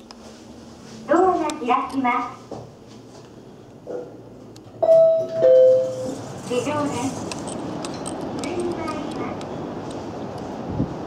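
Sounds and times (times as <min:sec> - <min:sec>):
elevator chime two descending tones: 0:04.8 - 0:06.1.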